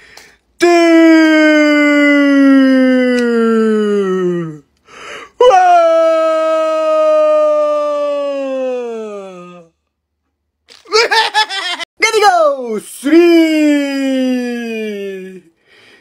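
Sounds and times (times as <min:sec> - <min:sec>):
man wailing: 0:00.6 - 0:04.6, 0:05.4 - 0:09.7, 0:10.9 - 0:15.4
quick breath: 0:04.8 - 0:05.4, 0:15.6 - 0:16.0.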